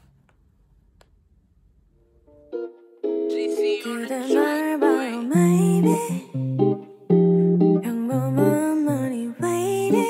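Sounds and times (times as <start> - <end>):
plucked string music: 2.3 - 10.0.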